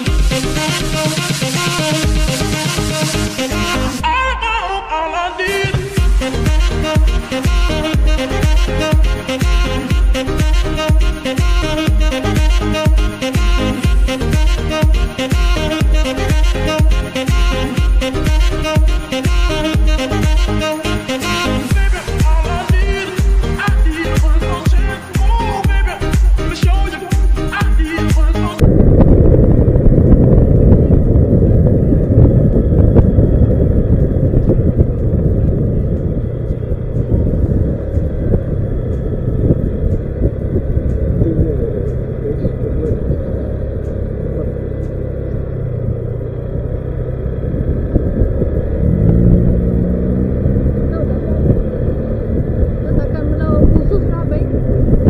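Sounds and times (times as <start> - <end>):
scooter engine: 4.8 - 27.6, 29.2 - 55.0
wind buffeting microphone: 28.6 - 55.0.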